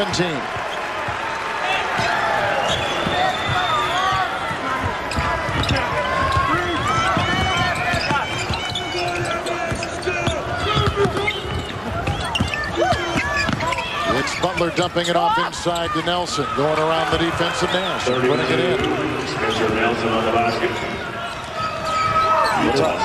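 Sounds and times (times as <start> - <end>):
arena crowd noise: 0.0 - 23.0
sneakers squeaking: 0.6 - 23.0.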